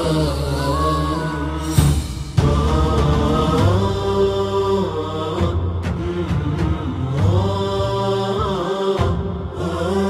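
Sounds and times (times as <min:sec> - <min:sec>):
chanting voice: 0:00.0 - 0:10.0.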